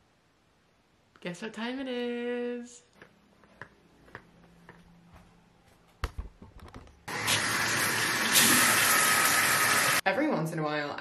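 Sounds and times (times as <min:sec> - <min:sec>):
shower water spraying: 0:07.1 - 0:10.0.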